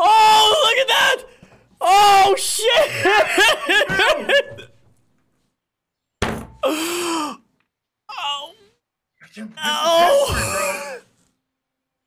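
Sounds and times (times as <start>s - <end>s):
man yelling excitedly: 0.0s - 4.1s, 9.6s - 11.0s.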